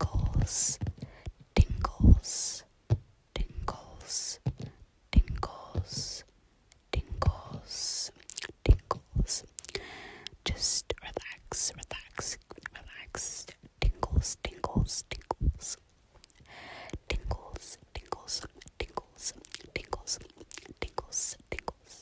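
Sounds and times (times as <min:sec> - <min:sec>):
person whispering: 0:00.0 - 0:02.7, 0:03.3 - 0:06.3, 0:06.9 - 0:22.0.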